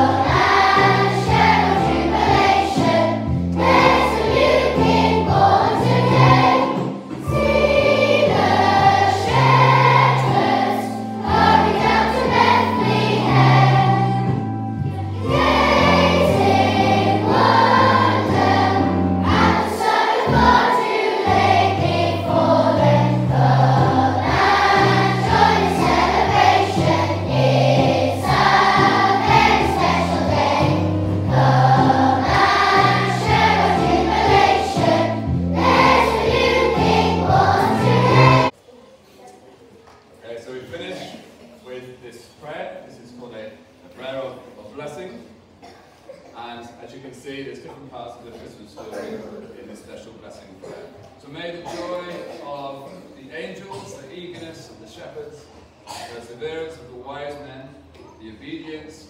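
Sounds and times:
children singing a carol: 0.0s - 38.5s.

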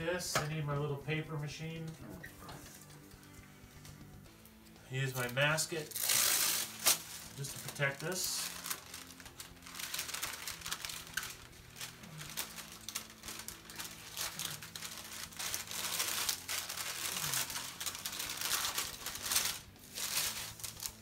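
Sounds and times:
paper crinkling and rustling: 5.1s - 21.0s.

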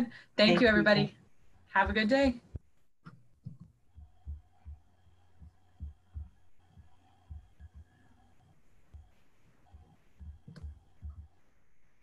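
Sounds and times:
faint steady hum: 0.0s - 12.0s
faint low thuds: 1.8s - 8.0s, 8.9s - 11.4s.

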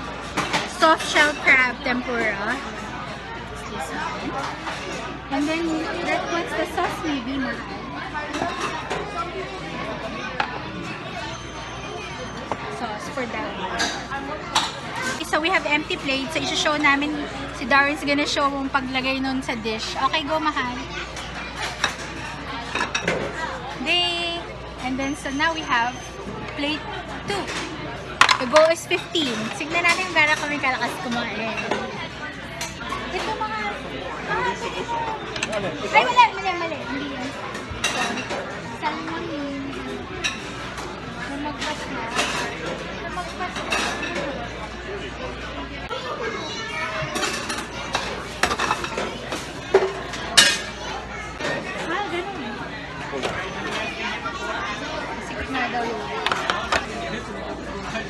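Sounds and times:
children chattering: 0.0s - 58.0s
restaurant background: 0.0s - 58.0s
dishes and chopsticks clinking: 21.2s - 23.3s, 47.1s - 50.8s.

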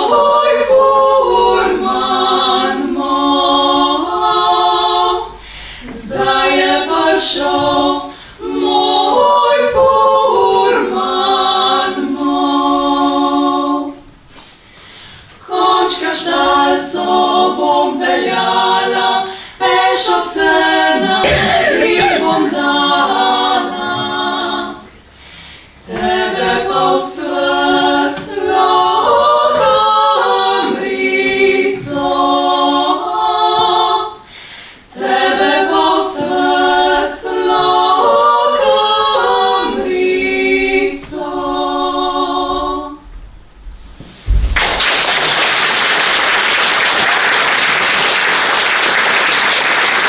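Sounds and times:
women singing a cappella: 0.0s - 43.3s.

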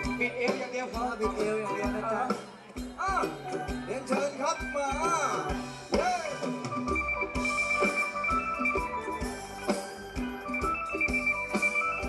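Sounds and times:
live dance band music: 0.0s - 12.0s
steady drum beat: 0.0s - 12.0s.

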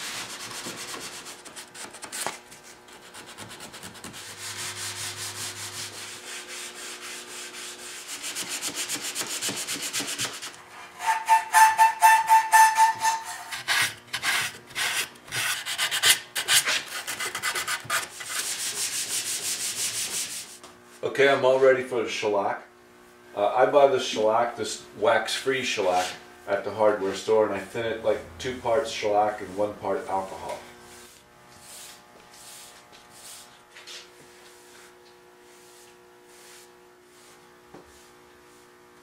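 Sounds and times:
sandpaper rubbing wood: 0.0s - 20.6s, 25.8s - 26.2s, 29.1s - 38.8s.

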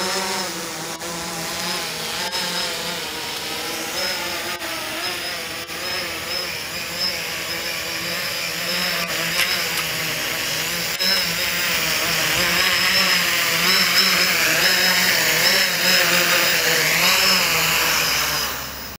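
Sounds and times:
drone motors buzzing whine: 0.0s - 18.9s.

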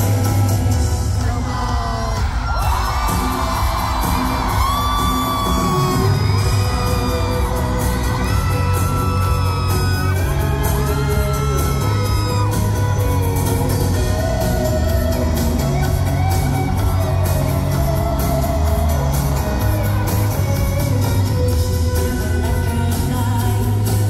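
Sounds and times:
crowd whooping and yelling: 0.0s - 24.0s
live pop-rock band playing: 0.0s - 24.0s
violin: 3.2s - 23.9s.

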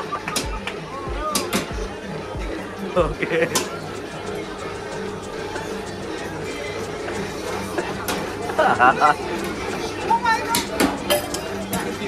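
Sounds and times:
background music with low thumps: 0.0s - 9.8s.

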